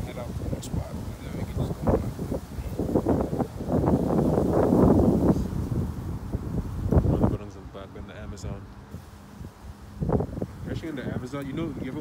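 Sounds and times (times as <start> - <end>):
reeds rustling: 0.0 - 12.0
wind buffeting microphone: 0.0 - 12.0.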